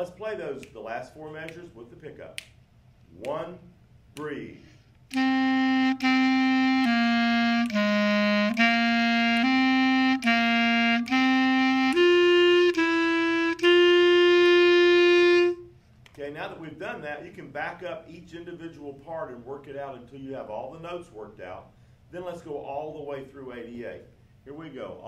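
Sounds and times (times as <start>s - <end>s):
clarinet playing slow phrase: 5.1s - 15.8s.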